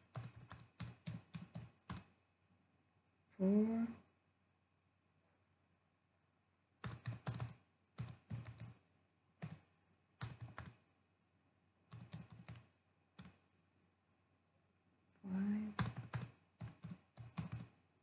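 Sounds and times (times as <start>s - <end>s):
computer keyboard typing: 0.0s - 2.1s, 6.8s - 8.8s, 9.4s - 10.8s, 11.9s - 13.4s, 15.7s - 17.7s.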